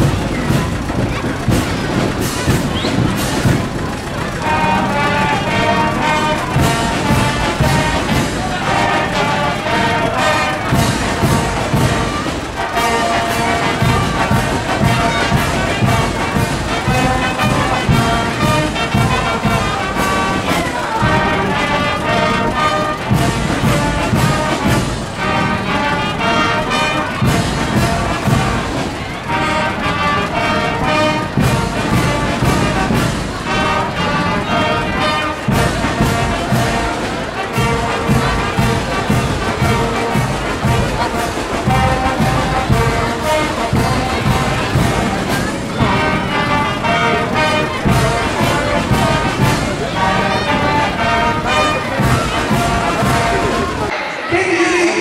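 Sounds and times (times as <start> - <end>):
brass marching band playing: 0.0 - 55.0.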